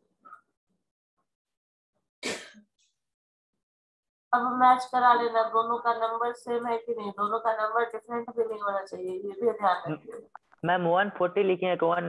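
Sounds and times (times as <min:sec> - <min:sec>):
person clearing throat: 0:02.2 - 0:02.7.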